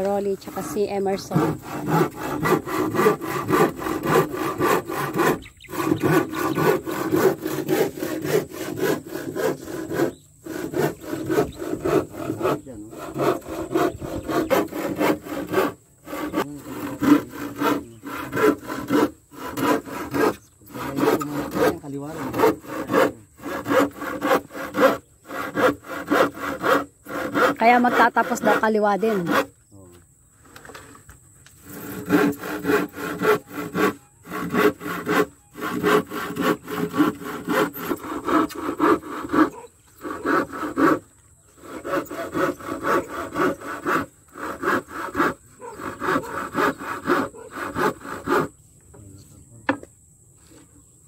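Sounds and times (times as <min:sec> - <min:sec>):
handsaw cutting a board: 0:00.0 - 0:29.5, 0:31.6 - 0:48.6.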